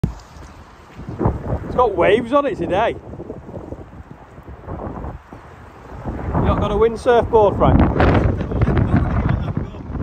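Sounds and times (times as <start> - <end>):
wind buffeting microphone: 0.0 - 10.0
man talking: 6.4 - 10.0.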